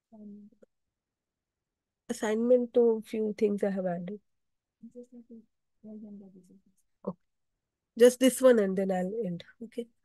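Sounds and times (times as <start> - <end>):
person murmuring: 4.8 - 6.5.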